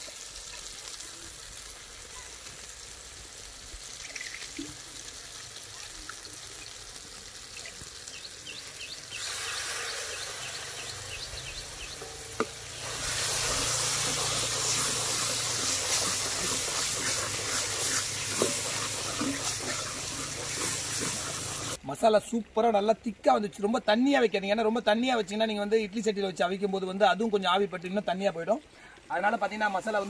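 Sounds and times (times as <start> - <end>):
masala sizzling in a pan: 0.0 - 22.7, 27.2 - 30.0
wooden spatula stirring: 11.8 - 21.8.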